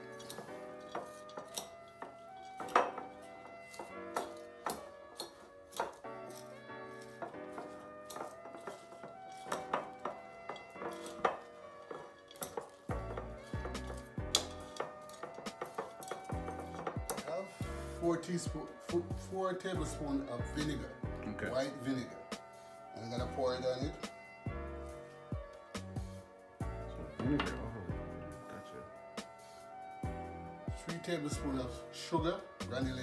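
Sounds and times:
background music: 0:00.0 - 0:33.0
metal utensil clinking glass bowl: 0:00.1 - 0:06.4, 0:07.0 - 0:17.2.

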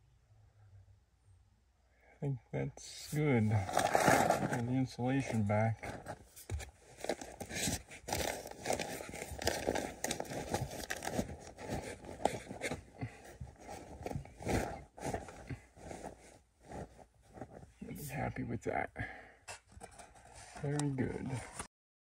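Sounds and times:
insulation rustling and crinkling: 0:03.0 - 0:18.8, 0:19.5 - 0:21.7.

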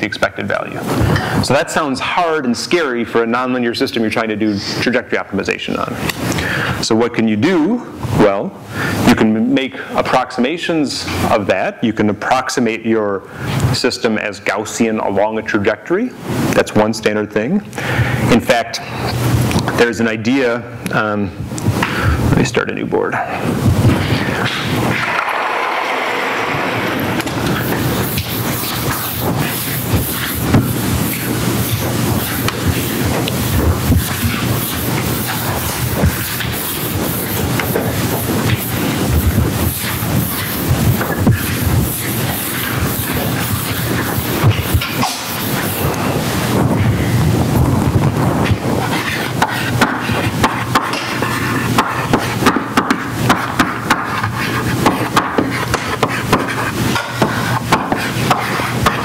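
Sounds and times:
eraser scrubbing chalkboard: 0:25.6 - 0:59.0
chalk writing on board: 0:27.5 - 0:46.0, 0:48.8 - 0:59.0.

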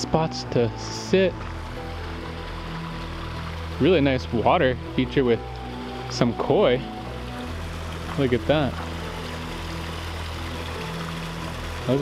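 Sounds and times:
running water: 0:00.0 - 0:12.0
soft background music: 0:00.0 - 0:12.0.

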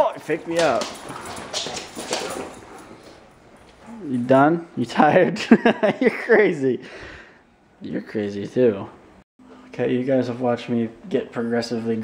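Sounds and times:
dog claws scrabbling on wood floor: 0:00.2 - 0:03.8.

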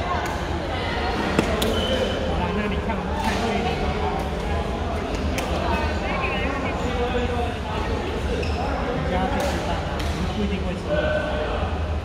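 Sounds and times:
chatter of players: 0:00.0 - 0:12.0.

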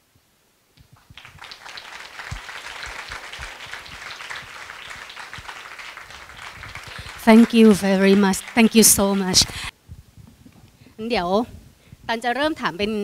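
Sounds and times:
audience applause: 0:01.0 - 0:09.7.

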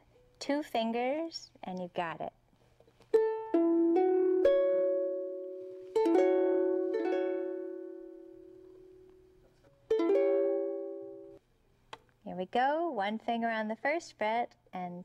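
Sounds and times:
ukulele chord strummed: 0:03.1 - 0:11.4
ukulele strings plucked: 0:03.1 - 0:11.4.

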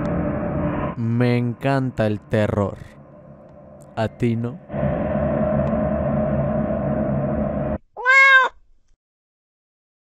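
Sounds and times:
low droning hum: 0:00.0 - 0:07.8
kitten meowing: 0:08.0 - 0:08.6.

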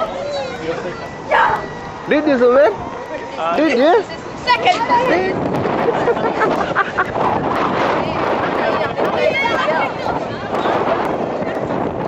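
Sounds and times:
people chatting: 0:00.0 - 0:12.0
wind noise on microphone: 0:00.0 - 0:12.0.

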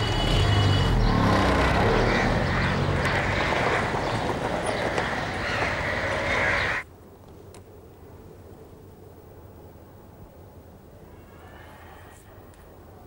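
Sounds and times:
road noise: 0:00.0 - 0:08.7
car engine pulling away: 0:00.5 - 0:04.2.

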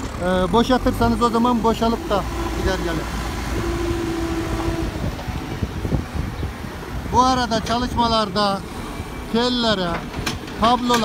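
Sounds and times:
diesel engine under load: 0:00.0 - 0:11.0.

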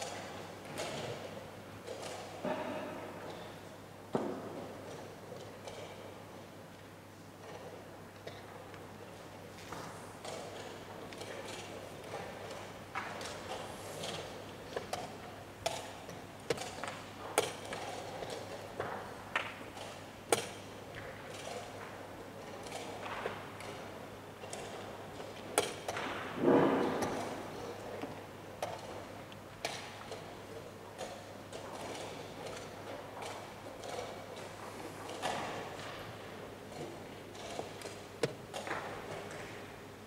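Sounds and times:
soft background noise of hall: 0:00.0 - 0:40.0.

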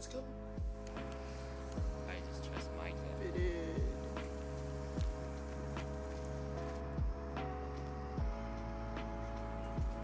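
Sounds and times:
held keyboard chords: 0:00.0 - 0:10.0
deep kick drum: 0:00.6 - 0:00.8, 0:01.8 - 0:02.1, 0:03.4 - 0:04.2, 0:05.0 - 0:05.5, 0:07.0 - 0:07.6, 0:08.2 - 0:08.7, 0:09.8 - 0:10.0.

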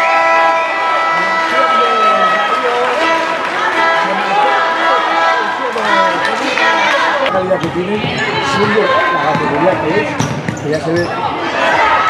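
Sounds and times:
people talking: 0:01.2 - 0:11.3.

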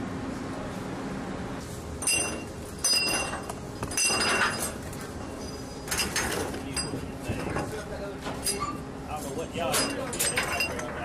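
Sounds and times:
metal links clinking on steel deck: 0:02.0 - 0:07.1, 0:09.6 - 0:11.0.

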